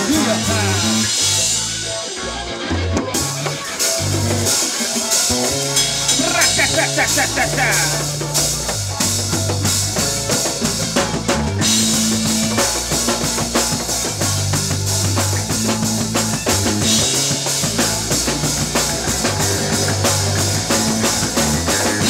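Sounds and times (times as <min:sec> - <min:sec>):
electric bass line: 0:00.0 - 0:04.6, 0:05.2 - 0:22.0
drum kit beat: 0:00.0 - 0:22.0
electric guitar: 0:00.0 - 0:22.0.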